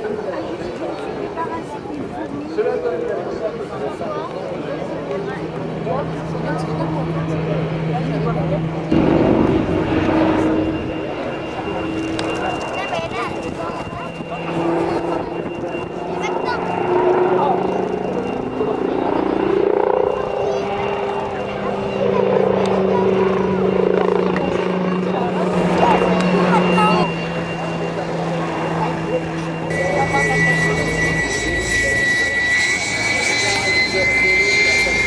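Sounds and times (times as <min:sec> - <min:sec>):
helicopter droning hum: 0:00.0 - 0:35.0.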